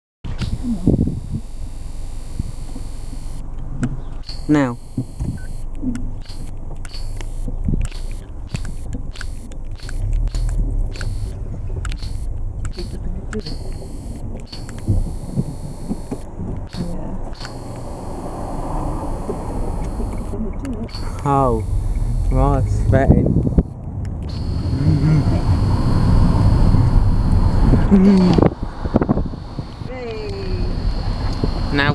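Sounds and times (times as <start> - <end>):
faint high steady tone: 0.3 - 3.5, 4.2 - 11.4, 12.0 - 23.1, 24.3 - 31.9
car idling: 0.3 - 31.9
faint high-pitched beep: 4.2 - 10.4, 12.0 - 18.3, 19.3 - 22.7
click: 4.2 - 17.9
rushing noise: 6.2 - 31.9.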